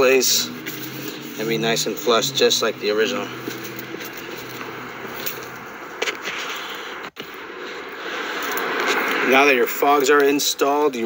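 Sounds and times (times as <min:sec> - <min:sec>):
low hum: 0:00.0 - 0:10.3
outdoor background noise: 0:00.0 - 0:11.0.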